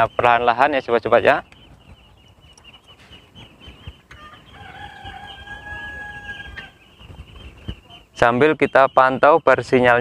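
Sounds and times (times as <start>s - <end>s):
rooster crowing: 4.2s - 6.8s.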